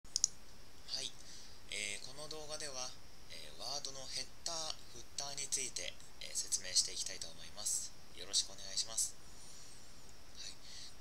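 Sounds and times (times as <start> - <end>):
computer mouse clicks: 0.1 - 0.4
person speaking: 0.9 - 9.2
faint breathy sound: 1.1 - 1.7, 9.2 - 11.0.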